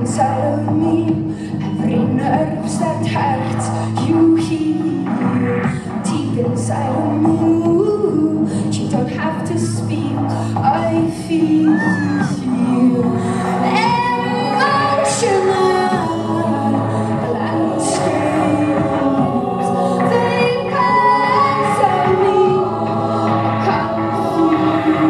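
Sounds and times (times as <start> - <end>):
woman singing lead: 0.0 - 25.0
women's choir singing: 11.4 - 25.0.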